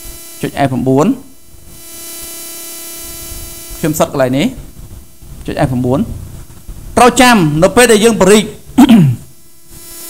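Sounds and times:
electrical hum with hiss: 0.0s - 10.0s
man speaking: 0.4s - 1.3s, 3.8s - 4.6s, 5.4s - 6.3s, 7.0s - 9.3s.

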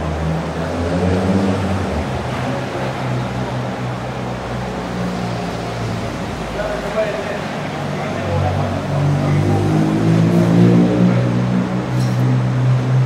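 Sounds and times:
large vehicle engine humming: 0.0s - 13.0s
wet city street noise: 0.0s - 13.0s.

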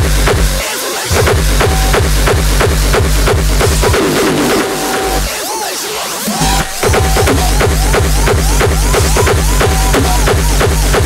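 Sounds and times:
heavy kick-drum beat: 0.0s - 5.4s, 6.4s - 11.0s
hardcore electronic dance music: 0.0s - 11.0s.

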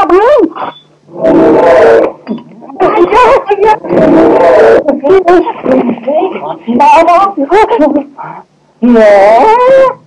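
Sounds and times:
rough roar-like cry: 1.1s - 2.2s, 3.8s - 4.9s
voice calling in wavering tones: 2.8s - 5.4s, 8.8s - 10.0s.

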